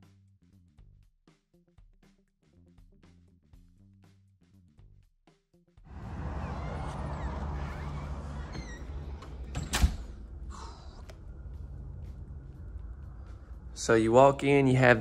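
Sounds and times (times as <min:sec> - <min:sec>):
rushing room noise: 0:05.9 - 0:15.0.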